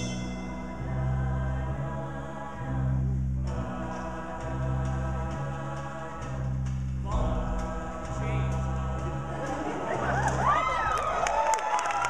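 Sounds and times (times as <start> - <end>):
choir singing held chords: 0.0 - 11.4.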